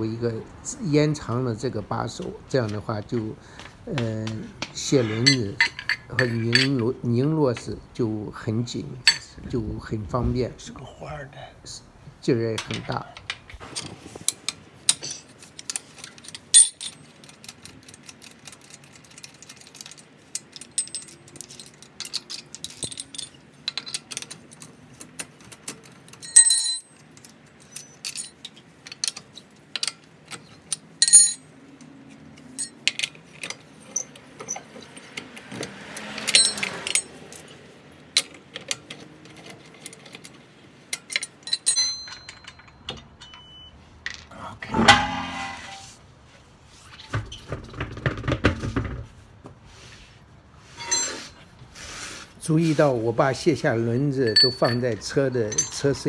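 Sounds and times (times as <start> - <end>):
lug nuts clicking and rattling: 2.2 - 7.8, 12.6 - 44.3
metal nuts clinking together: 3.6 - 7.0, 9.0 - 9.4, 14.5 - 35.2, 36.0 - 37.5, 38.1 - 45.8, 50.8 - 51.4, 54.0 - 56.0.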